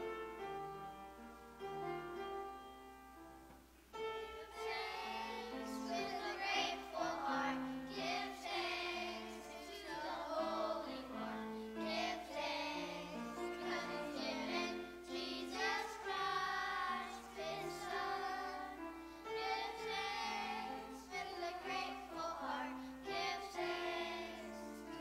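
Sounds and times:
children's choir singing: 4.0 - 25.0.

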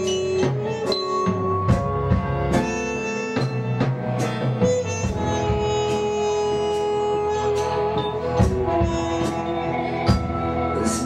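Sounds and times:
bass: 0.0 - 11.0
keyboard holding long notes: 0.0 - 11.0.

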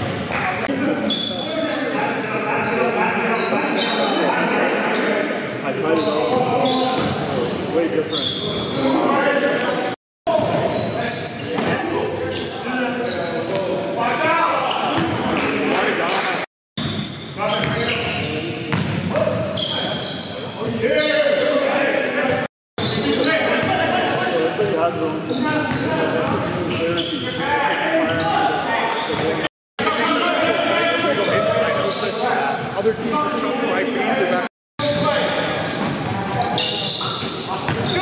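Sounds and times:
basketball bouncing on court: 16.8 - 19.5, 37.0 - 38.0.

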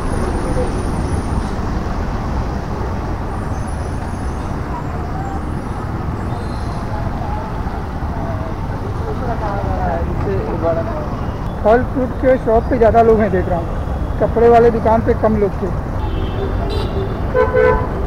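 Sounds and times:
highway traffic rumble: 0.0 - 18.0
faint voices: 2.6 - 17.3.

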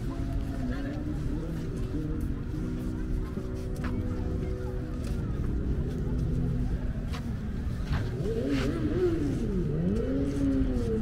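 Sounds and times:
vehicle engine revving: 0.1 - 11.0.

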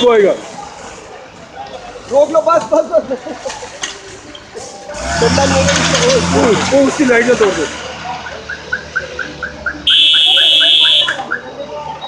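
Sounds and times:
vehicle engine hum: 4.0 - 12.0
shrill vehicle horn: 9.9 - 11.2.

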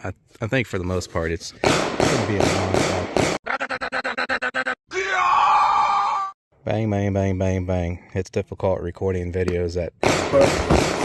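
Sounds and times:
person yelling: 4.9 - 6.4.

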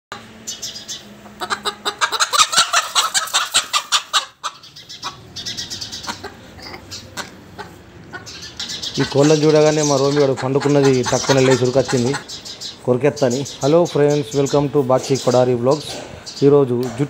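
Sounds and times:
roosters clucking and squawking: 0.1 - 17.0.

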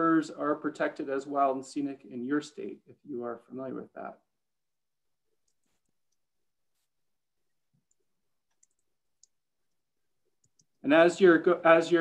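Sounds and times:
man speaking: 0.0 - 4.3, 10.8 - 12.0.

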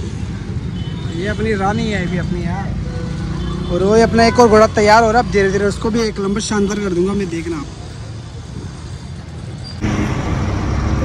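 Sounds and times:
engine and traffic rumble: 0.0 - 11.0.

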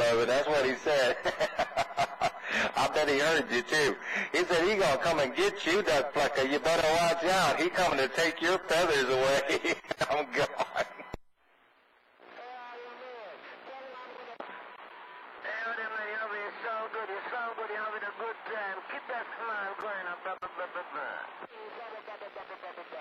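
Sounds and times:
voice over radio speaker: 0.0 - 11.0, 12.4 - 23.0
faint radio hiss: 0.0 - 23.0.

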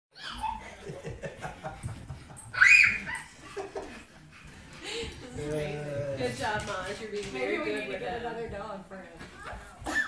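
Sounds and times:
toddler giggling: 0.2 - 1.2
dog play noises: 0.2 - 10.0.

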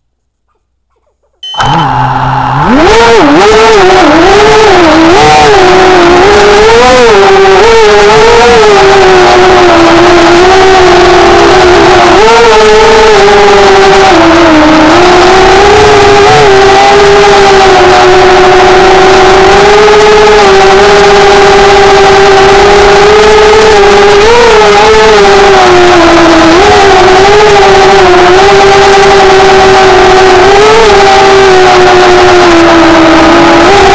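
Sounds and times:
small motor whining: 1.6 - 33.9.

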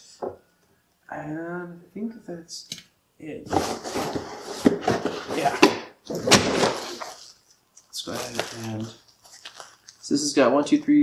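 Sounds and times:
cardboard box rustling and scraping: 3.5 - 5.5.

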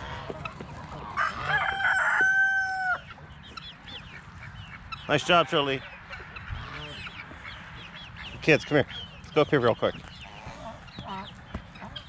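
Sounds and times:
low poultry call: 0.0 - 9.2, 10.0 - 12.0
poultry chirping: 0.0 - 12.0.

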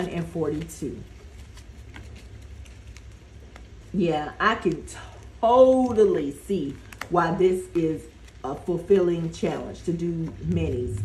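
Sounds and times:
paper banknotes rustling: 0.0 - 4.0, 4.6 - 10.8.

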